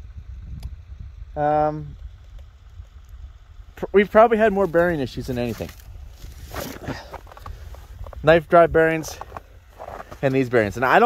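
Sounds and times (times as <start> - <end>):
low steady rumble: 0.0 - 11.0
man speaking: 3.8 - 5.8, 8.2 - 9.3, 10.2 - 11.0.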